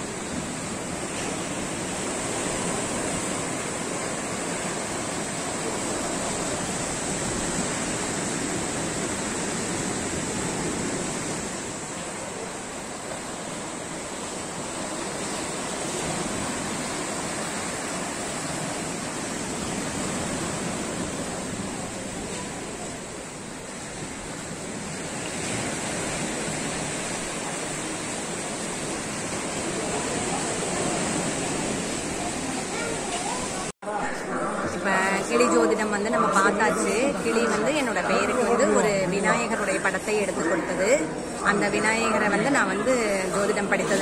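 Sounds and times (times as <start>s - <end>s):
waves washing up a sandy shore: 0.0s - 44.0s.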